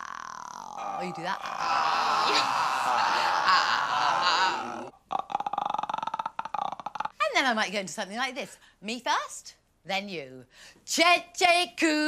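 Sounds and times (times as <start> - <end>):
man making croaking vocal noise: 0.0 - 7.2.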